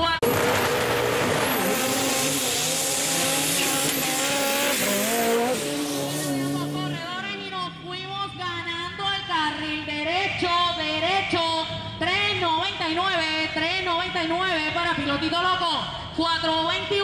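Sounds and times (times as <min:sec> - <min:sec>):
truck engines revving: 0:00.0 - 0:12.8
tyres on dirt: 0:00.2 - 0:07.3.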